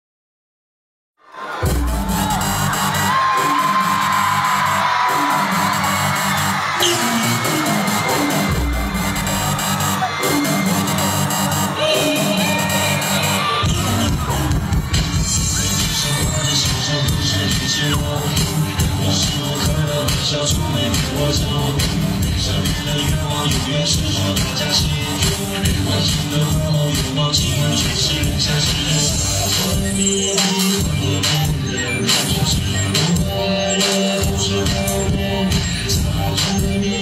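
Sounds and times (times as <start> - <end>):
audience cheering: 1.2 - 20.4
live pop song through sound system: 1.3 - 37.0
heavy bass beat: 1.6 - 37.0
man singing: 11.8 - 37.0.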